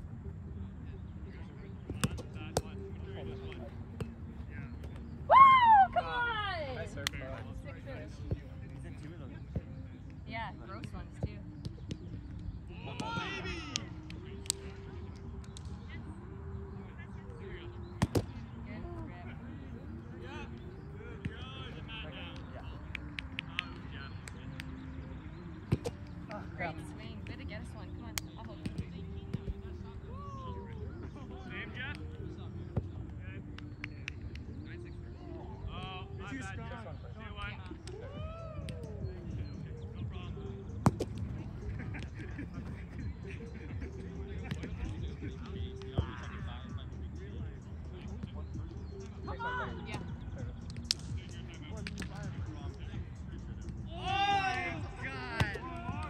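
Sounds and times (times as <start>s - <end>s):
low outdoor background: 0.0s - 56.0s.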